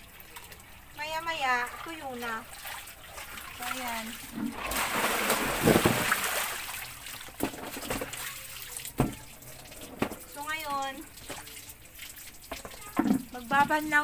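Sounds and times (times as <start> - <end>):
garden hose running into basin: 0.0 - 14.0
water splashing from tipped basin: 0.0 - 14.0.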